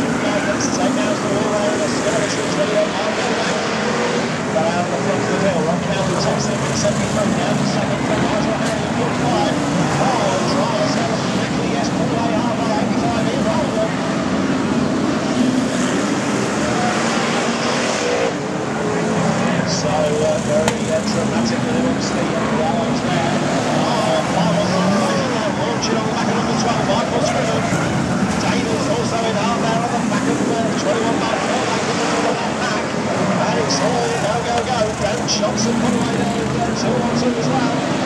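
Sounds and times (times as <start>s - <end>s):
racing car engines: 0.0s - 38.0s
voices: 0.0s - 38.0s.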